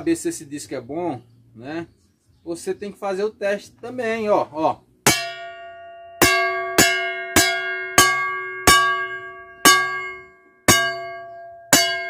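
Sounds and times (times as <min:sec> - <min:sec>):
saw blade ringing when struck: 0:05.1 - 0:12.0.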